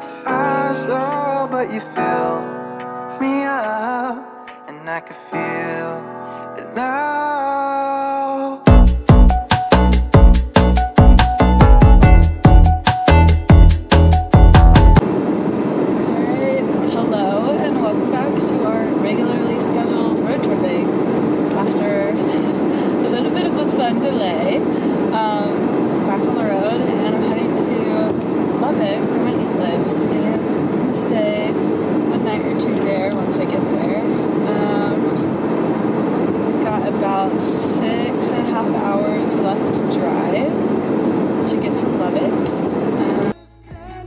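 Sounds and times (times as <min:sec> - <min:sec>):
quiet music: 0:00.0 - 0:15.0, 0:43.0 - 0:44.0.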